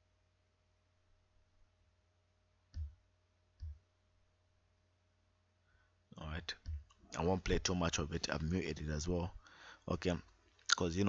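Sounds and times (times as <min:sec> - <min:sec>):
man speaking: 0:06.1 - 0:11.0.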